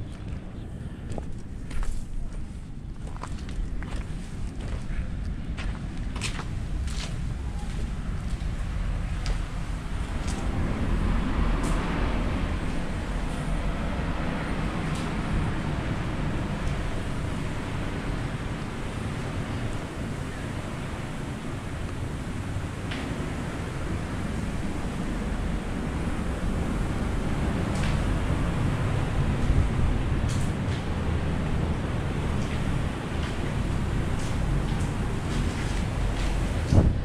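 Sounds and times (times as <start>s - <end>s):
wind buffeting microphone: 0.0s - 37.0s.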